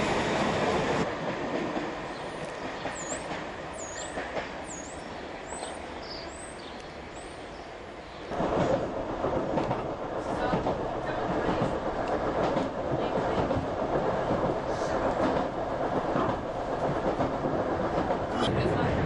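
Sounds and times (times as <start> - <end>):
train wheels rumbling on track: 0.0 - 19.0.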